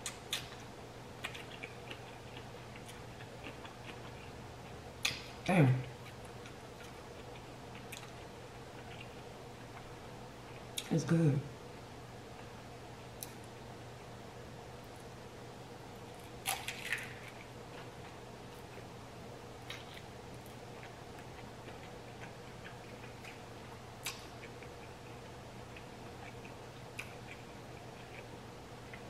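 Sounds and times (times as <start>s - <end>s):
person chewing food: 0.0s - 10.9s, 16.0s - 18.9s, 19.6s - 29.0s
steady low hum: 0.0s - 29.0s.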